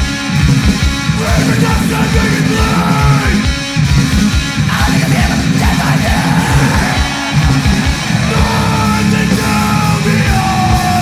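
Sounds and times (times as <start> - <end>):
distorted guitar: 0.0 - 11.0
fast pounding drums: 0.0 - 11.0
yelled vocals: 1.0 - 11.0.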